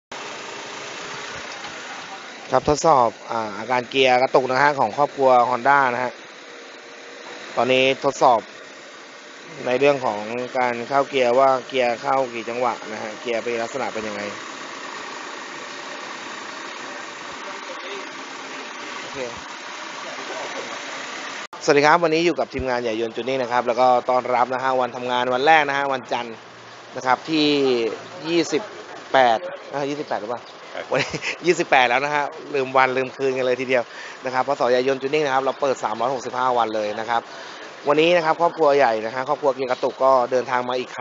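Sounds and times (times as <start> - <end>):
car engine idling: 0.0 - 41.0.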